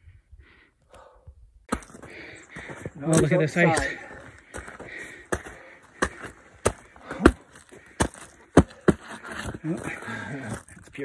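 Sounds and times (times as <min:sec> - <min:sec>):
footsteps on rocky ground and ice: 0:01.7 - 0:11.0.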